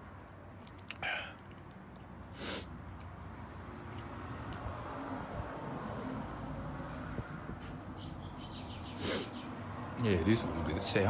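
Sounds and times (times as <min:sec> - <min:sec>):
man breathing out sharply: 0:02.3 - 0:02.7, 0:09.0 - 0:09.4.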